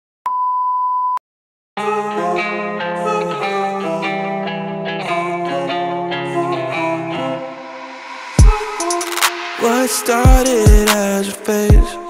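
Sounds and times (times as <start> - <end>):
guitar music: 1.8 - 12.0.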